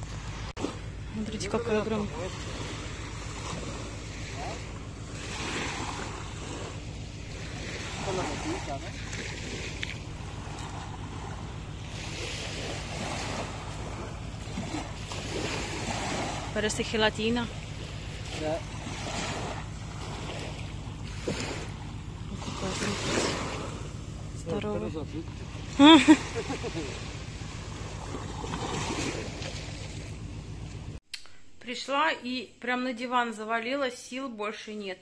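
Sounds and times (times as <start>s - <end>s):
low rumble: 0.0s - 31.0s
waves breaking on shore: 0.0s - 31.0s.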